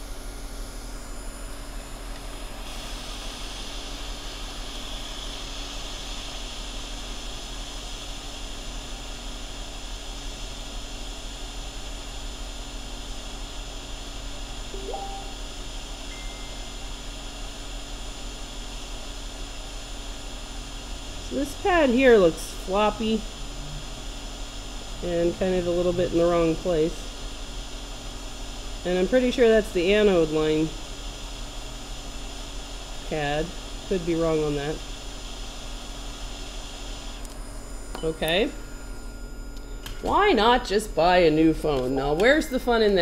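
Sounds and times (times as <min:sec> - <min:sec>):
hot air blower hissing: 0:00.0 - 0:15.2, 0:15.8 - 0:38.6
low electrical hum: 0:14.6 - 0:18.7, 0:19.7 - 0:32.0, 0:32.9 - 0:43.0.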